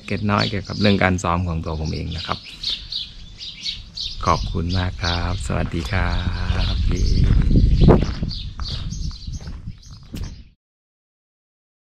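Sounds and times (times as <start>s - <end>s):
birds chirping: 0.0s - 10.6s
wind rumbling on microphone: 2.9s - 10.6s.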